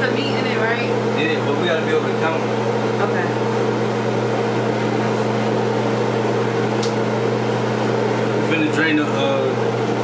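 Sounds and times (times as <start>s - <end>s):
electric motor hum: 0.0s - 10.0s.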